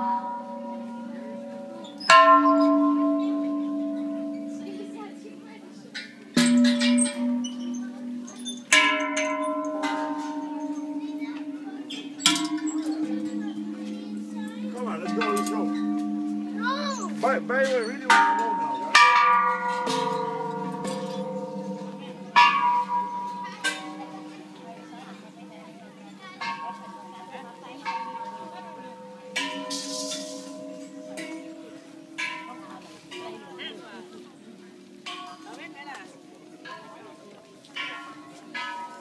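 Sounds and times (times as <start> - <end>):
metal bells ringing: 0.0 - 34.2.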